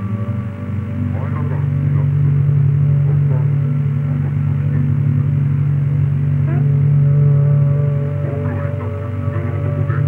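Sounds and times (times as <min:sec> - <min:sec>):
loud low drone: 0:00.0 - 0:10.0.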